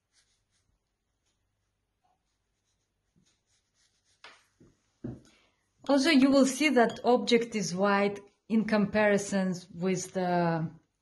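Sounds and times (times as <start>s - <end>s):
paintbrush strokes on paper: 0.0s - 5.4s.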